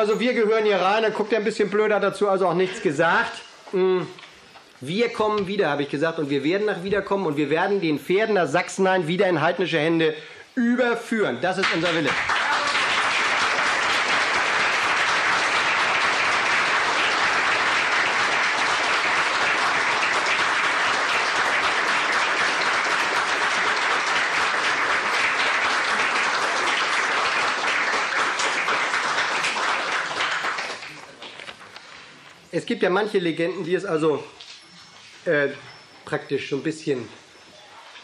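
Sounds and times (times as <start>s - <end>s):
audience applauding: 11.6s - 31.8s.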